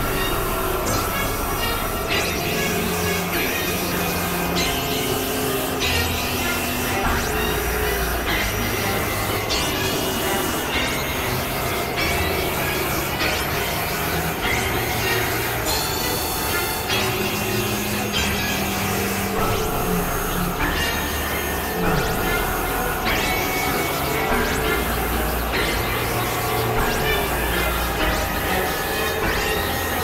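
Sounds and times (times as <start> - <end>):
electronic noise music: 0.0 - 30.0.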